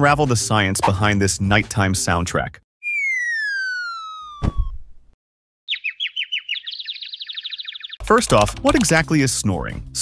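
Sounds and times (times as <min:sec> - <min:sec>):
falling cartoon whistle: 0:02.8 - 0:04.9
rapid bird-like twittering: 0:05.7 - 0:08.0.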